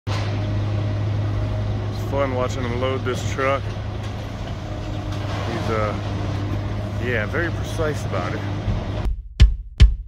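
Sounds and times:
heavy diesel engine running: 0.1 - 9.1.

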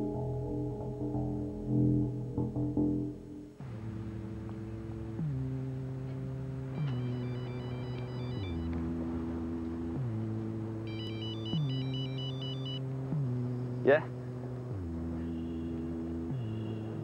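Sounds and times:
low synthesizer drone: 0.0 - 17.0
electronic telephone ringing: 7.0 - 8.7, 10.9 - 12.8.

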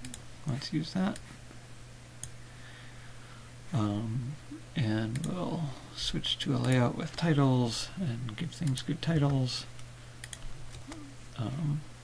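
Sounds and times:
low electrical hum: 0.0 - 12.0
computer mouse click: 10.2 - 11.0.

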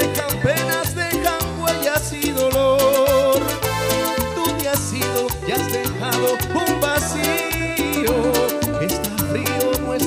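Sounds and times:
bass line: 0.0 - 10.0
keyboard melody: 0.0 - 10.0
percussion beat: 0.0 - 10.0.

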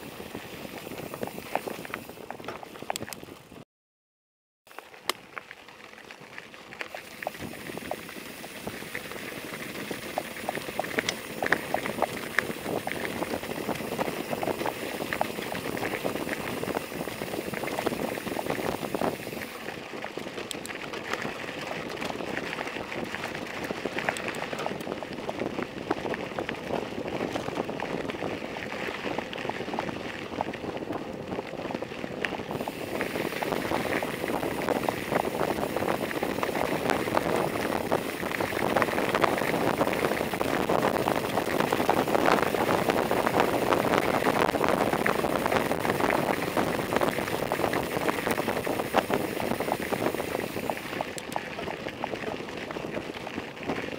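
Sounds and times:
bicycle tyres rolling on gravel: 0.0 - 3.6, 4.7 - 53.9.

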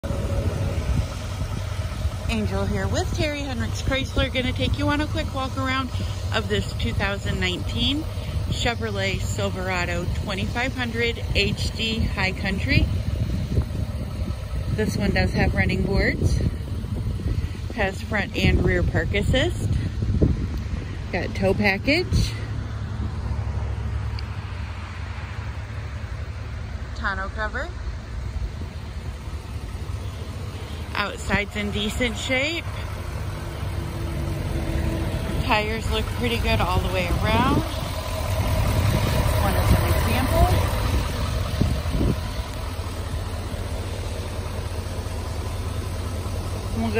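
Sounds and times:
faint outdoor background noise: 0.0 - 46.9
vehicle engine idling: 0.0 - 46.9.

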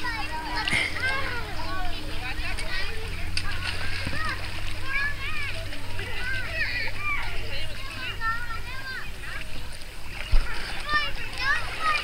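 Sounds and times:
children calling and shouting: 0.0 - 12.0
water splashing: 0.0 - 12.0.

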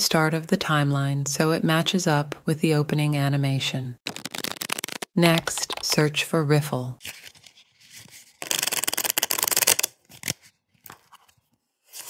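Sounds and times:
cards being riffle-shuffled: 4.0 - 6.0, 7.0 - 12.0.

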